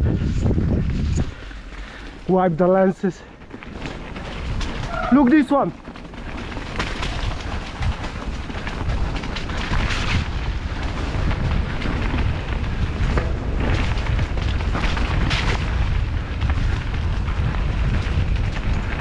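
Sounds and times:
bike knocking and rattling: 0.0 - 19.0
wind buffeting microphone: 0.0 - 19.0
tyres rolling over dirt: 0.9 - 19.0.

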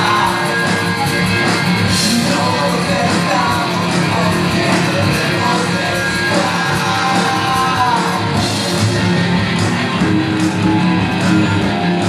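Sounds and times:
electric guitar: 0.0 - 12.0
rock band playing: 0.0 - 12.0.

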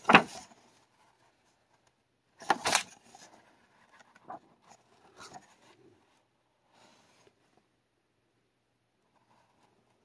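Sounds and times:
book pages rustling: 0.0 - 7.6.

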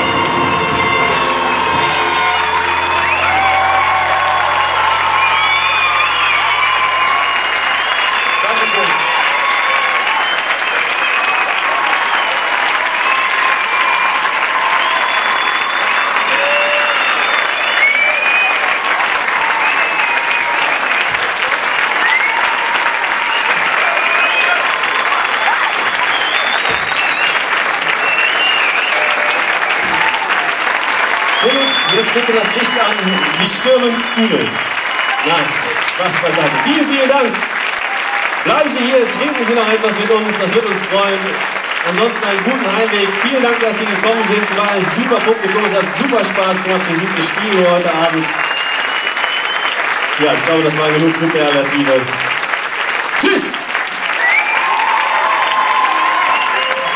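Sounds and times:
big band final chord: 0.0 - 8.4
audience applauding and cheering: 0.0 - 56.9.

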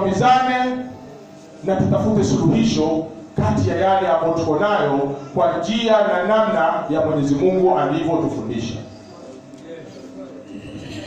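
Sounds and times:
room noise: 0.0 - 11.0
faint indistinct voices: 0.9 - 1.7, 8.8 - 11.0.

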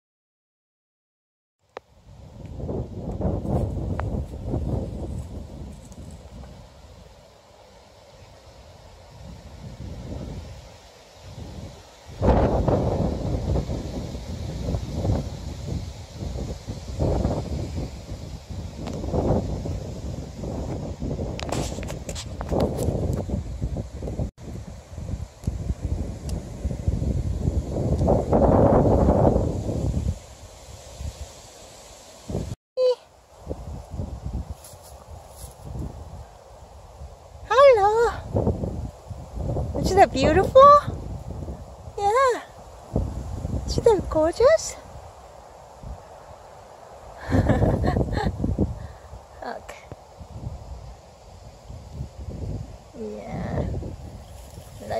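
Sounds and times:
wind buffeting microphone: 2.0 - 7.3, 8.2 - 31.3, 32.2 - 54.9.

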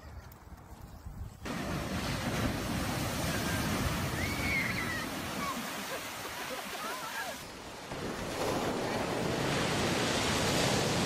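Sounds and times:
ocean surf breaking: 1.5 - 11.0.

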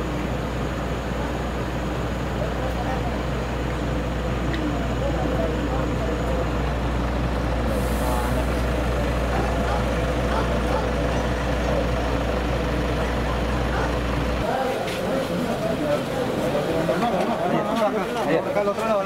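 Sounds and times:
vehicle engine idling: 0.0 - 19.0
voices: 0.0 - 19.0.

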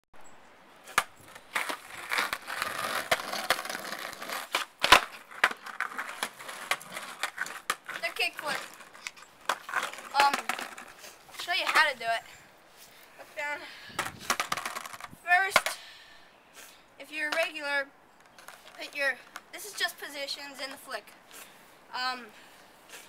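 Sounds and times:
skateboard wheels rolling on asphalt: 0.8 - 15.8, 17.0 - 21.4
skateboard clacking on pavement: 0.9 - 11.9, 14.0 - 15.8, 17.3 - 17.6
child's voice: 8.0 - 8.7, 10.1 - 10.6, 11.4 - 12.3, 13.2 - 13.7, 15.2 - 15.8, 17.0 - 17.9, 18.7 - 21.2, 21.9 - 22.4.

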